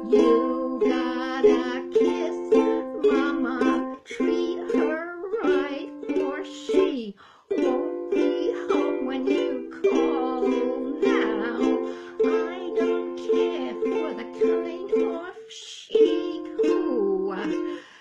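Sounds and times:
ukulele strumming: 0:00.0 - 0:18.0
woman singing: 0:00.0 - 0:18.0.

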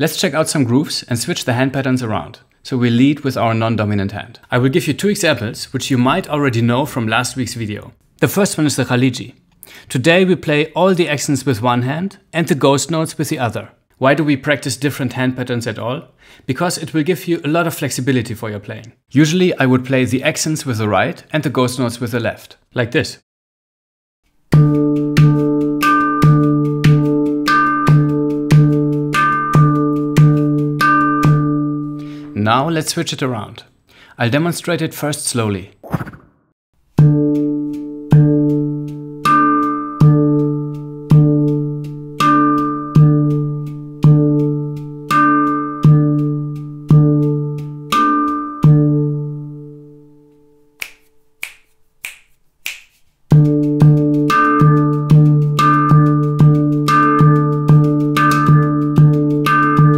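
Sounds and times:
handpan played by hand: 0:24.5 - 0:32.1, 0:37.0 - 0:49.9, 0:53.3 - 0:59.9.

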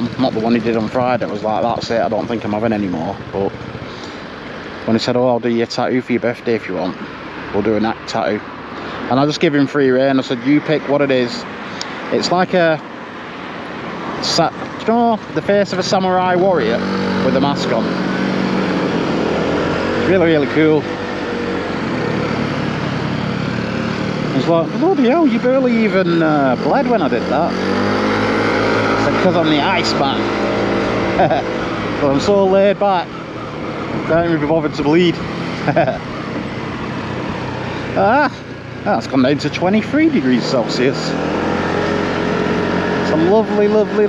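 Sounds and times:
motorcycle engine running: 0:00.0 - 0:05.1, 0:14.2 - 0:44.0
wind and road noise: 0:00.0 - 0:44.0.

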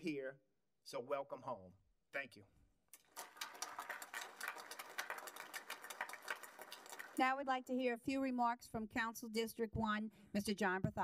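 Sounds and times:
audience applauding: 0:03.0 - 0:07.3.

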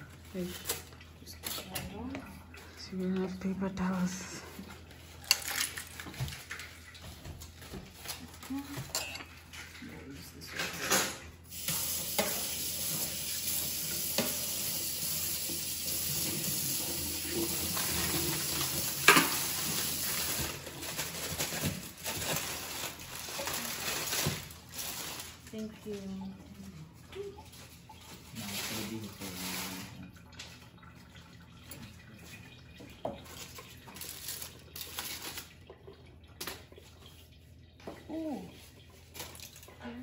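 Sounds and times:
cutlery and dishes clattering: 0:08.8 - 0:09.8, 0:10.4 - 0:11.3.

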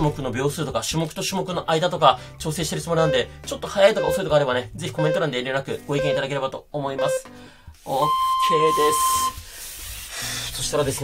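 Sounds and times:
long electronic timer beep: 0:03.0 - 0:03.3, 0:04.0 - 0:04.2, 0:05.0 - 0:05.2, 0:06.0 - 0:06.2, 0:07.0 - 0:07.2, 0:08.0 - 0:09.4.

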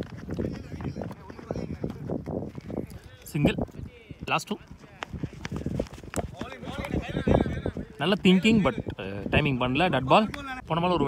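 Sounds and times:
men calling out: 0:06.4 - 0:09.0.

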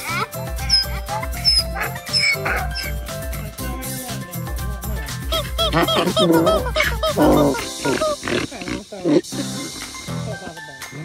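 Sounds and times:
donkey braying: 0:00.0 - 0:03.4, 0:05.3 - 0:10.0.

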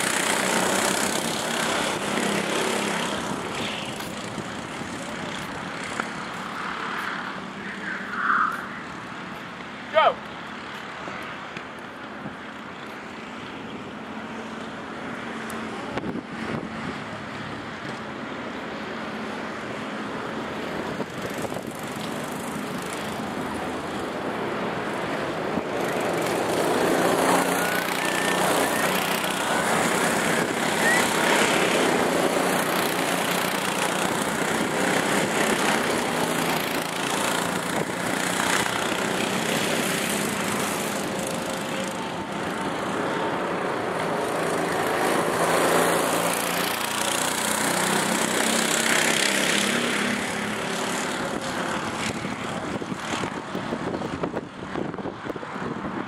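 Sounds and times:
go-kart engines passing: 0:00.0 - 0:56.0.

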